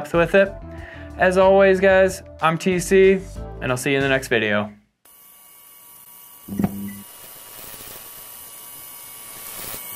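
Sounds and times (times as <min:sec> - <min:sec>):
neon sign electrical hum: 0:06.3 - 0:07.2.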